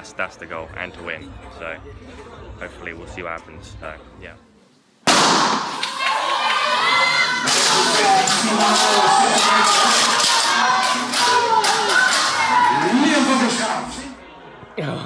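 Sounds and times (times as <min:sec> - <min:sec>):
spectators shouting and cheering: 0:05.5 - 0:14.2.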